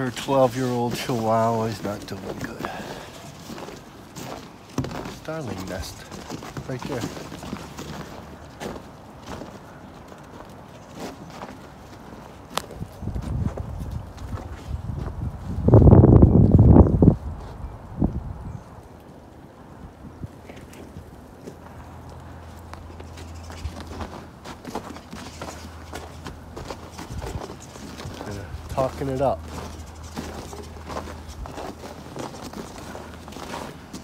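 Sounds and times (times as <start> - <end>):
wind buffeting microphone: 12.5 - 18.9, 25.9 - 33.5.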